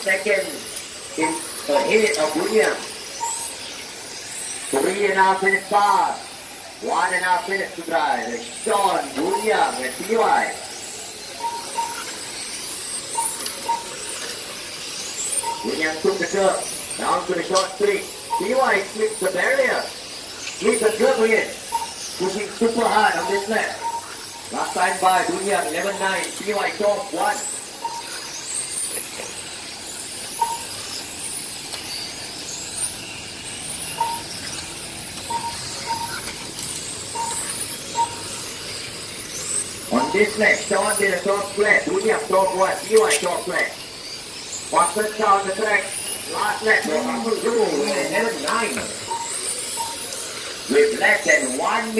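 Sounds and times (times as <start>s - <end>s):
rc car motors whining: 0.0s - 51.9s
steady hiss: 0.0s - 51.9s
short beeps: 1.2s - 3.6s, 9.2s - 10.3s, 11.4s - 12.1s, 13.1s - 14.0s, 15.3s - 17.2s, 18.3s - 19.1s, 20.6s - 28.2s, 30.4s - 30.8s, 33.9s - 34.4s, 35.2s - 36.4s, 37.1s - 38.5s, 39.9s - 43.2s, 46.3s - 50.4s.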